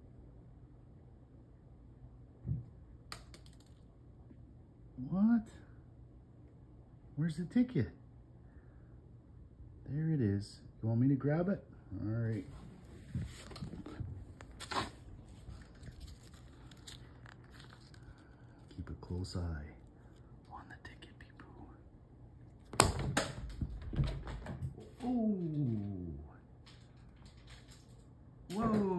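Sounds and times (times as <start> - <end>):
paper crinkling: 12.8 - 19.2.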